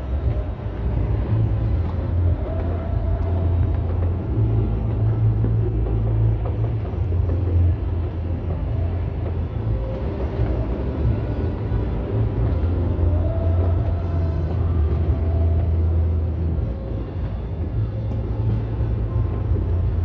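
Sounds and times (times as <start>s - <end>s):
distant fireworks rumble: 0.0s - 20.0s.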